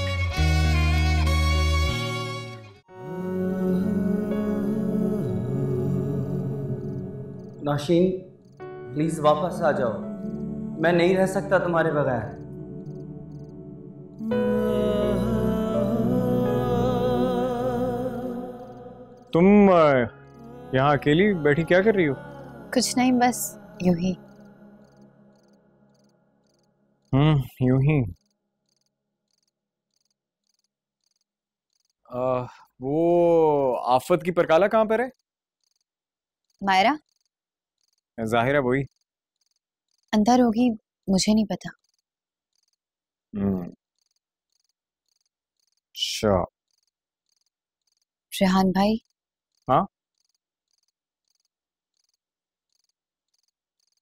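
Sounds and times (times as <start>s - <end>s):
cricket chirping: 6.2s - 14.7s, 18.6s - 32.7s, 35.0s - 40.4s, 41.6s - 42.8s, 44.0s - 48.1s, 49.0s - 54.0s.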